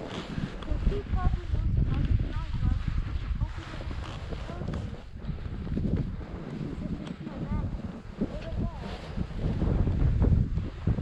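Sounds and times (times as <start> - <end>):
skis moving through snow: 0.0 - 11.0
wind on microphone: 0.0 - 11.0.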